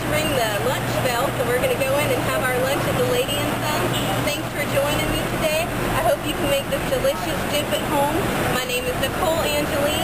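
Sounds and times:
city street traffic: 0.0 - 10.0
woman talking: 0.0 - 10.0.

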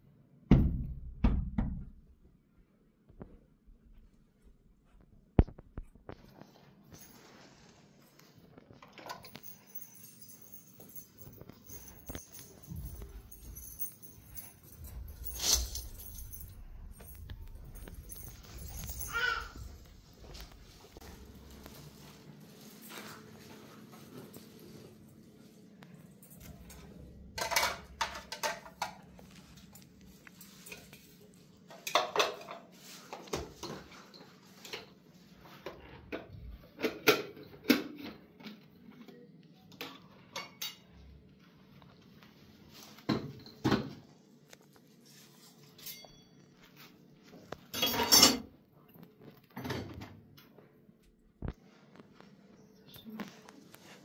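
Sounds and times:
containers and dishes clattering: 27.3 - 29.4, 31.7 - 35.0, 47.6 - 48.5
kitchenware knocking and clinking: 27.4 - 29.1, 31.7 - 34.0, 36.1 - 38.6, 43.1 - 44.1, 47.7 - 48.5.

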